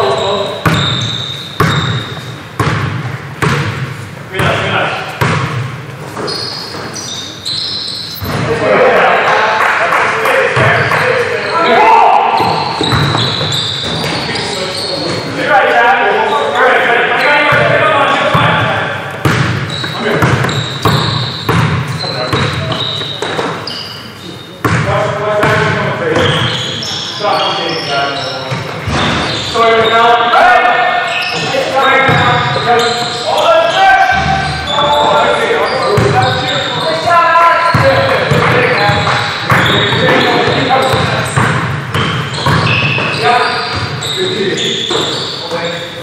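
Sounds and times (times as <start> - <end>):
basketball dribbling on gym floor: 0.6 - 4.6, 12.4 - 14.1, 19.2 - 23.6, 37.7 - 44.0
players calling out: 6.2 - 46.0.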